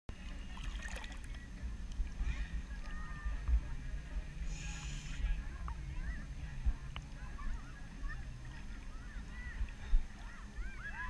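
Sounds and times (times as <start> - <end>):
low rumble: 0.1 - 11.0
water lapping: 0.1 - 11.0.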